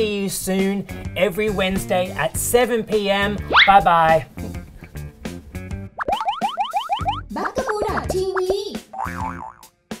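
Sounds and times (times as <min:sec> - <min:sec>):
rising boing glides: 0:06.0 - 0:07.3
squeaky wavering tones: 0:06.0 - 0:07.3.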